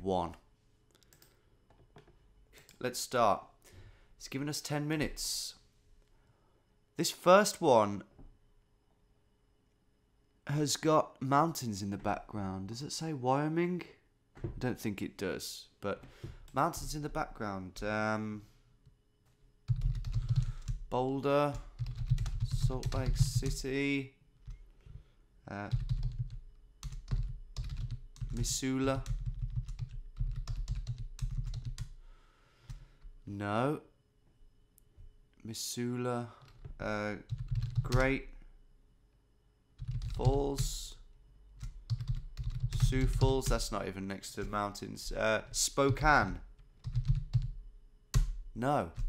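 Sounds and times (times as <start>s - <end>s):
fast keyboard typing: 19.7s - 23.7s, 25.6s - 32.0s, 36.4s - 38.1s, 39.8s - 40.8s, 41.6s - 43.8s, 45.5s - 48.4s.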